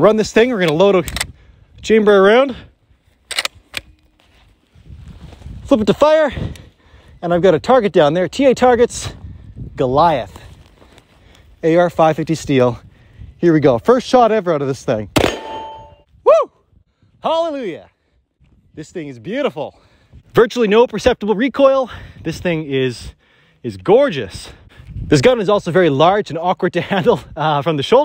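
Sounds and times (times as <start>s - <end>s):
rifle bolt clicks: 0.6s - 1.3s, 3.2s - 4.0s
rifle shot crack: 15.2s - 15.9s
metallic ring of steel target: 15.2s - 16.1s.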